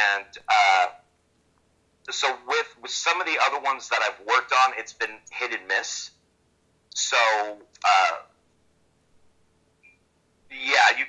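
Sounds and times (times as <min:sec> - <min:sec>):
man saying uh: 0:00.0 - 0:01.0, 0:02.1 - 0:06.1, 0:06.9 - 0:08.2, 0:10.5 - 0:11.0
faint steady hum: 0:00.0 - 0:11.0.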